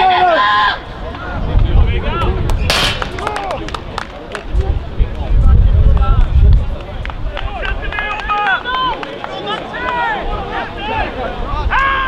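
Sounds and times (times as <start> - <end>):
players shouting: 0.0 - 1.4, 7.4 - 12.0
wind buffeting microphone: 0.8 - 9.0, 10.2 - 12.0.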